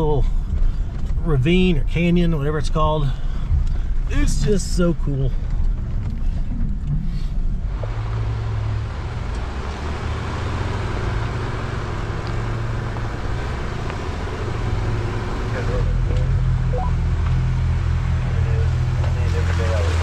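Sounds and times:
engine running low drone: 0:00.0 - 0:20.0.

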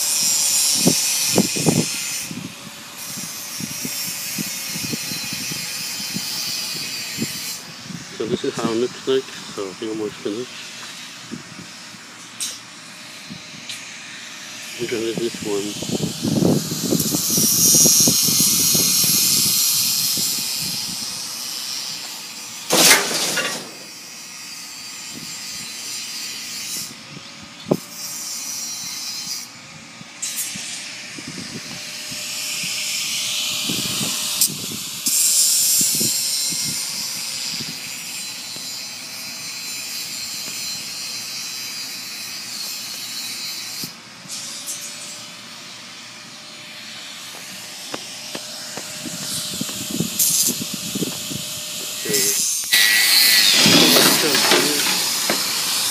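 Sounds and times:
loud hissing: 0:13.9 - 0:21.8, 0:49.0 - 0:55.9.

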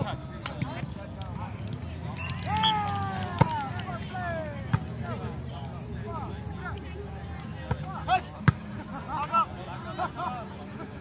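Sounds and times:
players shouting: 0:00.6 - 0:10.6.

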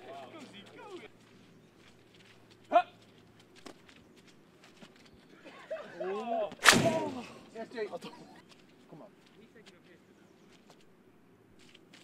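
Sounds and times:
loud sharp crack: 0:06.6 - 0:07.4.

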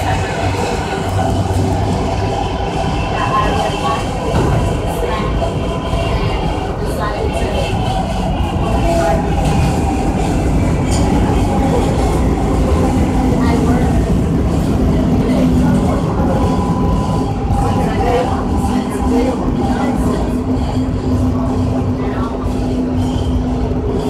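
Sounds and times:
subway wheels rumbling on track: 0:00.0 - 0:24.0.

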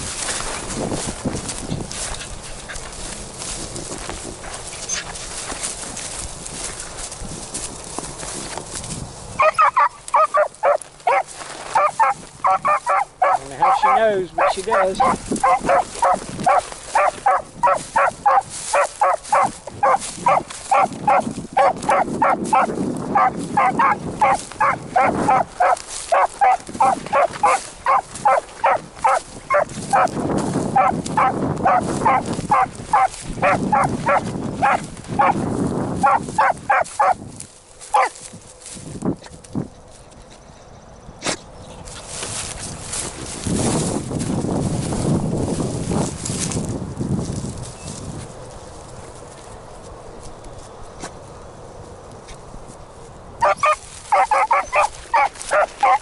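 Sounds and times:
brush rustling: 0:00.0 - 0:40.3, 0:41.2 - 0:56.0
wind: 0:00.0 - 0:56.0
dog baying in rapid barks: 0:09.4 - 0:35.4, 0:36.0 - 0:37.2, 0:37.9 - 0:38.2, 0:53.4 - 0:56.0.

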